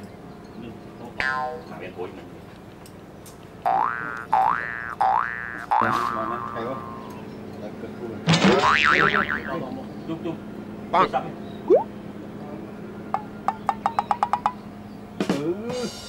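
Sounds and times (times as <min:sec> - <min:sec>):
cartoon rising boings: 0:03.7 - 0:07.2, 0:08.6 - 0:09.6, 0:11.7 - 0:11.9
warbling wobbling effect: 0:08.7 - 0:09.6, 0:11.7 - 0:11.9
tone sliding down: 0:11.7 - 0:11.9.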